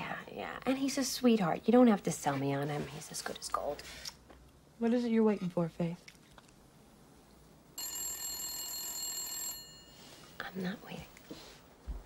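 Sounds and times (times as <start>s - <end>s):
telephone ringing: 7.8s - 10.2s.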